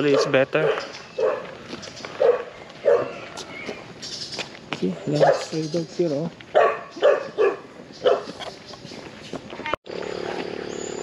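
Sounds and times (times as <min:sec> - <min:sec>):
dogs barking: 0:00.0 - 0:03.4, 0:05.0 - 0:05.6, 0:06.5 - 0:08.6.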